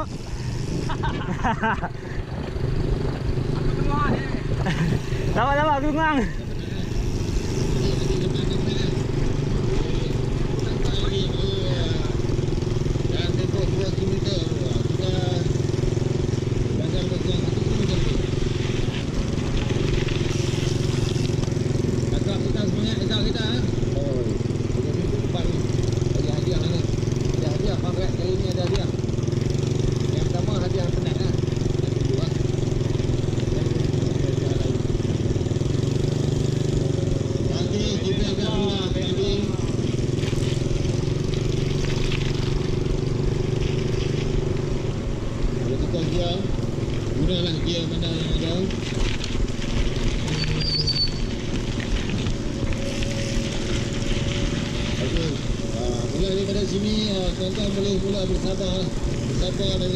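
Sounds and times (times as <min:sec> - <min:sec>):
motorcycle engine running: 0:00.0 - 0:59.9
wind and road noise: 0:00.0 - 0:59.9.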